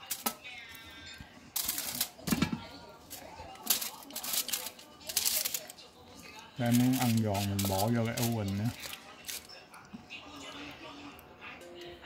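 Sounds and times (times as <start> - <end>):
aluminium foil crinkling: 0.0 - 9.9
beef jerky rustling: 1.5 - 9.9.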